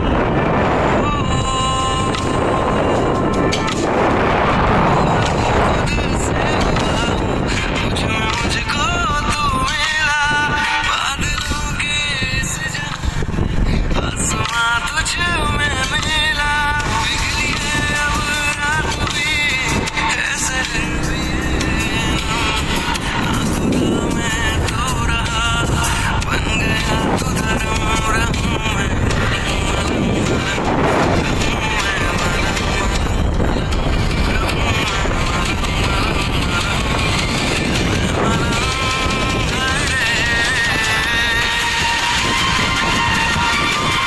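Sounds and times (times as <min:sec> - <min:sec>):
background music: 0:00.0 - 0:44.0
song with sung melody: 0:00.0 - 0:44.0
vehicle rumble on road: 0:00.0 - 0:44.0.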